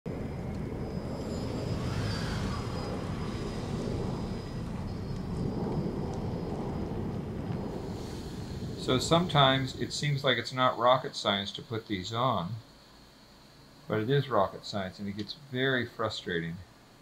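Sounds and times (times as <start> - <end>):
low rumble of traffic: 0.1 - 10.9.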